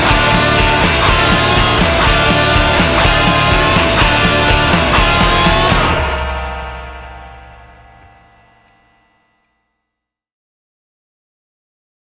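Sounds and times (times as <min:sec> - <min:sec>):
electric guitar and bass chord ringing: 0:00.0 - 0:09.9.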